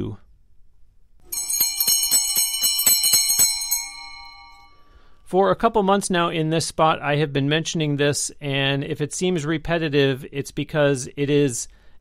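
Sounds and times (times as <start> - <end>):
bright bell-like chimes: 1.3 - 5.0.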